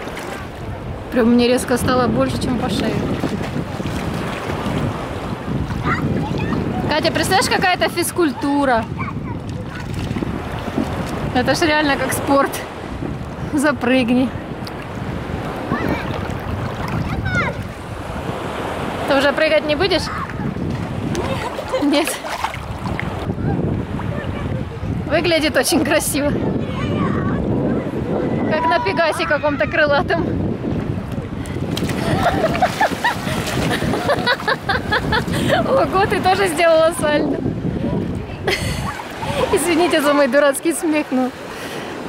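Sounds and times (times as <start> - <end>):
sea water sloshing: 0.0 - 26.0, 27.7 - 42.0
small waves lapping: 0.0 - 42.0
wind buffeting microphone: 0.0 - 42.0.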